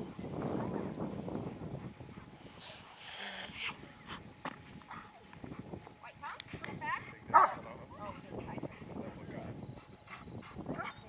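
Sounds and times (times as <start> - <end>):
dog barking: 7.3 - 7.6.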